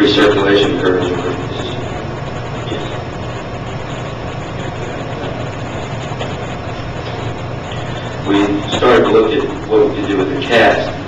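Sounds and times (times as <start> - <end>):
low hum with hiss: 0.0 - 11.0
slide projector running: 0.0 - 11.0.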